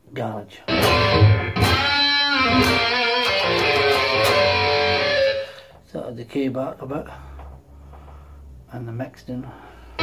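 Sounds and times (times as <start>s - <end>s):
distorted electric guitar lead: 0.7s - 5.7s.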